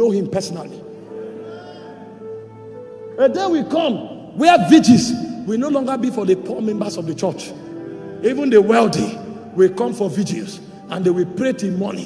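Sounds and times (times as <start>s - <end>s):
soft sustained chord music: 0.0s - 12.0s.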